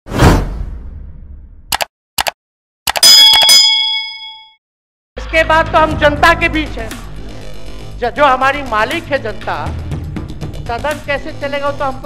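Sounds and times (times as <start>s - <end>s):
short clicks: 1.7s - 3.5s
bright bell-like ding: 3.0s - 4.6s.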